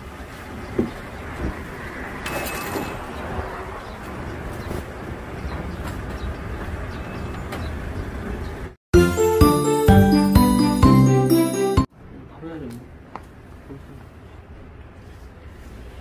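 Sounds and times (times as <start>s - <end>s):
street noise: 0.0s - 16.0s
bright chiming jingle melody: 9.0s - 11.9s.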